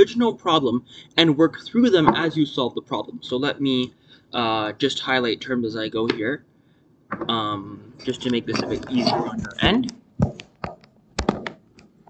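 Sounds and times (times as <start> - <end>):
laptop casing taps and knocks: 10.2 - 11.6.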